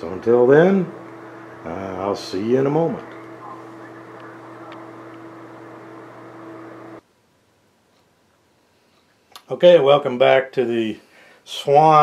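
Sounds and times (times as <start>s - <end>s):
faint room noise: 0.0s - 12.0s
low electrical hum: 0.0s - 12.0s.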